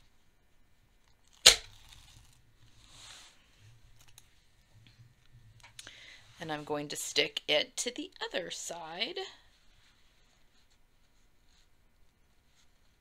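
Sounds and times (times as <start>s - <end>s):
tape ripping off fabric: 1.2s - 2.4s.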